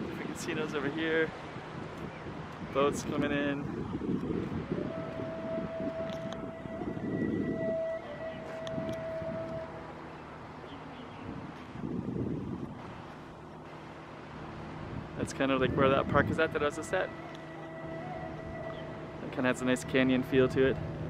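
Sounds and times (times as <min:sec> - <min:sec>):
wind on microphone: 0:00.0 - 0:10.0, 0:10.6 - 0:13.4, 0:14.4 - 0:21.0
distant traffic: 0:00.0 - 0:21.0
horn or siren long note: 0:04.4 - 0:10.0, 0:15.5 - 0:21.0.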